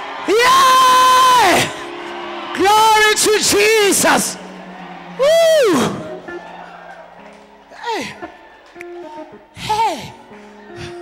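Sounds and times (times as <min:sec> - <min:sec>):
woman shouting into microphone: 0:09.6 - 0:10.2.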